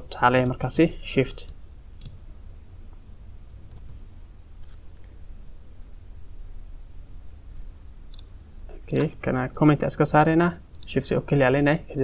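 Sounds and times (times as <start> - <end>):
man speaking: 0.0 - 1.6, 8.7 - 12.0
low steady hum: 0.0 - 12.0
computer mouse click: 3.6 - 4.0, 10.7 - 11.0.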